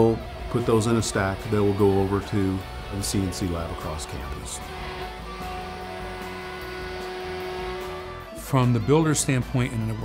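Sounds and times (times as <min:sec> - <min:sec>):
router cutting wood: 0:00.0 - 0:10.0
spindle motor whine: 0:00.0 - 0:10.0.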